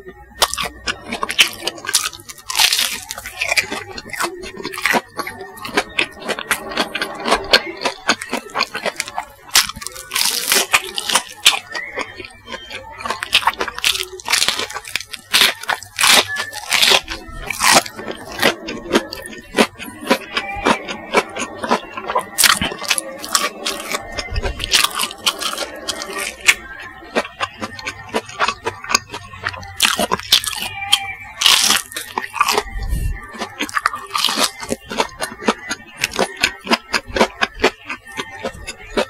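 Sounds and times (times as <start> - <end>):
crunchy chewing of nuggets: 0.0 - 39.0.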